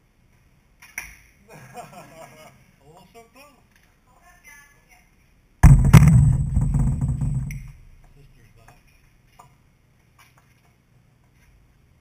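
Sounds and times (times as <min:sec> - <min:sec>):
bow thudding on floor: 0:05.6 - 0:07.9
low rumble: 0:05.6 - 0:08.0.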